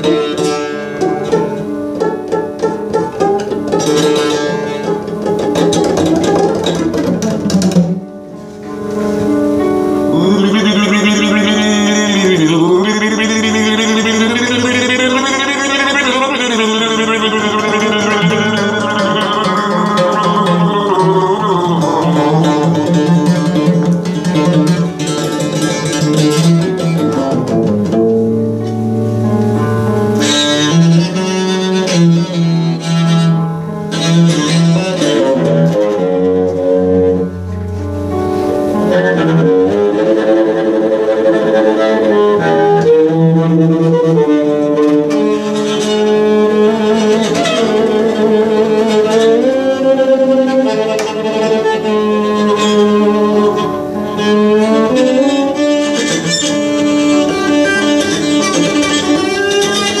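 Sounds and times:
bowed upright bass: 0.0s - 60.0s.

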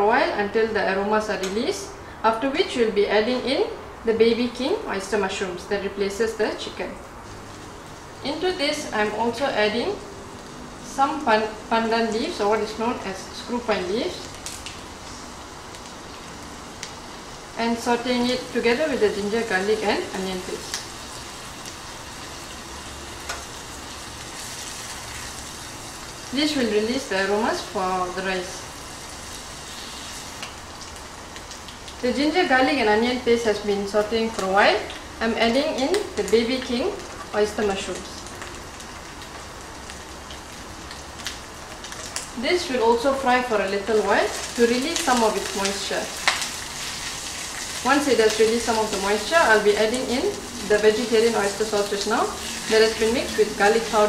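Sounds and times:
mushrooms sizzling in oil: 5.2s - 54.0s
paste sizzling in oil: 28.7s - 30.9s, 44.3s - 54.0s.

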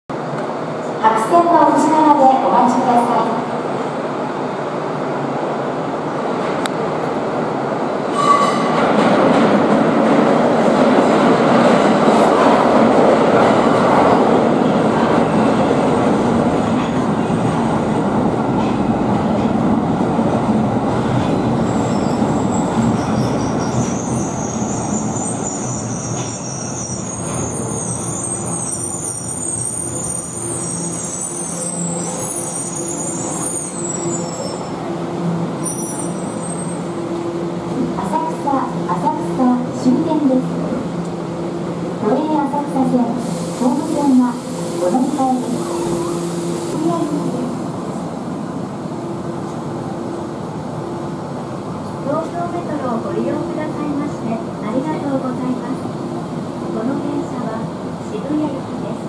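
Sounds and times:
rumble of train wheels on rail: 3.1s - 28.7s
high-pitched brake squealing: 21.8s - 34.8s, 35.6s - 36.9s.

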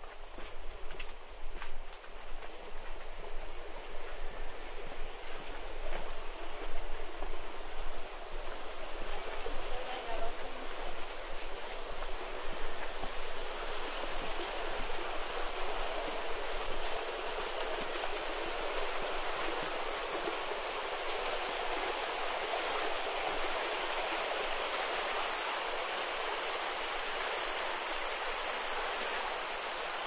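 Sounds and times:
water rushing along stone channel: 0.0s - 30.0s.

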